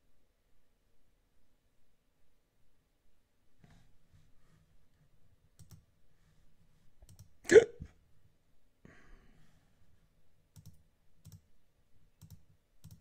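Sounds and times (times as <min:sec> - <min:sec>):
faint computer mouse clicks: 0:05.6 - 0:05.8, 0:07.0 - 0:07.3, 0:10.6 - 0:11.5, 0:12.2 - 0:13.0
person hiccuping: 0:07.5 - 0:07.9.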